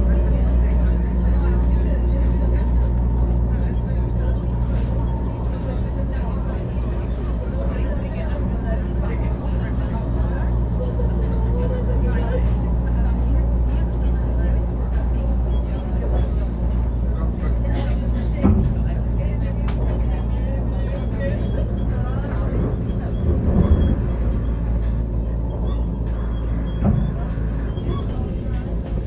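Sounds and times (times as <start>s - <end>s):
train rumbling inside carriage: 0.0s - 29.0s.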